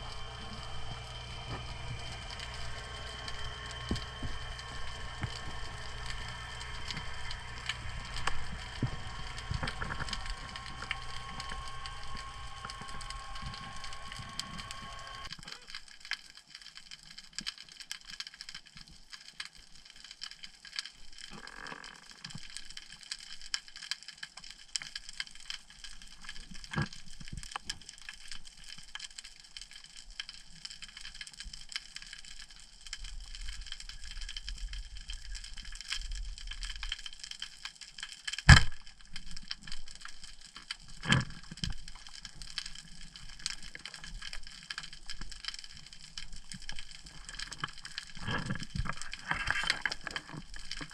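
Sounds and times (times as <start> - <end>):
steady tone: 0.0 - 15.3
snapping shrimp crackle: 0.0 - 50.9.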